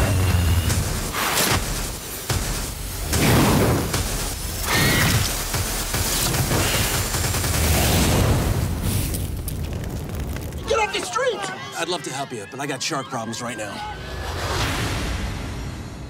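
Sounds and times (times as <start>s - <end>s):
fiery explosion: 7.5s - 10.8s
whooshing surges: 13.9s - 16.0s.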